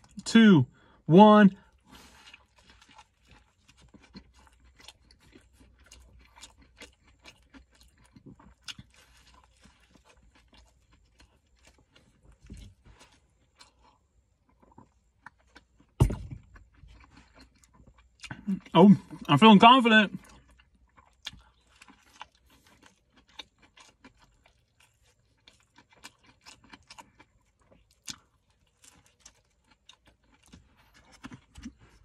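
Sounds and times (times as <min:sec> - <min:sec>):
man chewing food: 0:00.0 - 0:00.2, 0:00.8 - 0:32.0
loud thump: 0:16.0 - 0:16.4.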